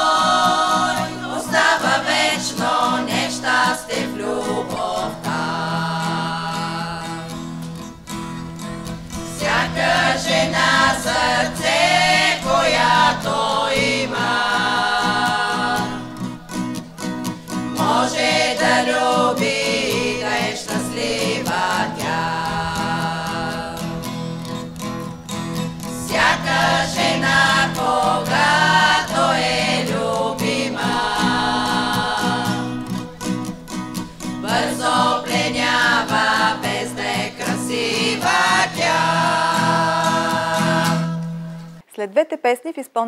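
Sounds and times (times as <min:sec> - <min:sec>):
women singing in harmony: 0:00.0 - 0:07.6, 0:09.2 - 0:16.3, 0:17.7 - 0:24.2, 0:25.9 - 0:33.0, 0:34.3 - 0:41.6
strummed acoustic guitar: 0:00.0 - 0:41.8.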